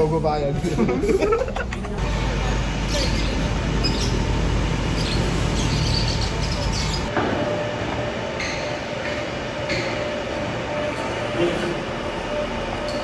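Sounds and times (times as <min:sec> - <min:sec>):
city street traffic rumble: 0:00.0 - 0:13.0.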